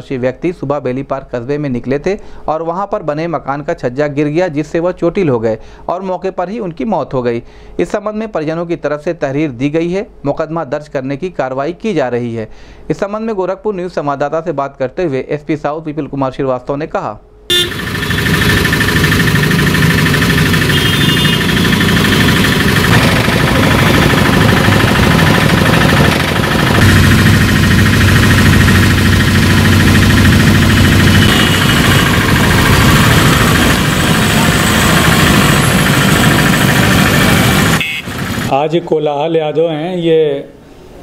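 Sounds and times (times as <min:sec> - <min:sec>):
heavy engine rumble: 0:17.5 - 0:38.6
motor vehicles running: 0:17.5 - 0:38.6.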